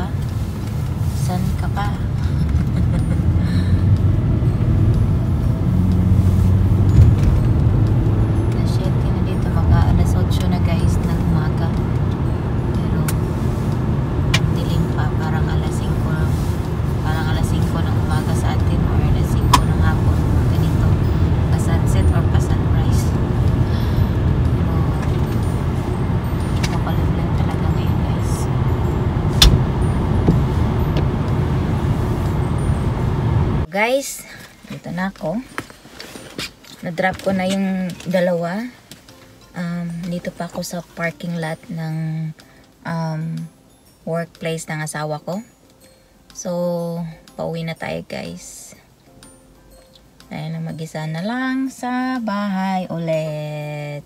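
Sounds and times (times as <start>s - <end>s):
car driving on wet road: 0.0s - 33.7s.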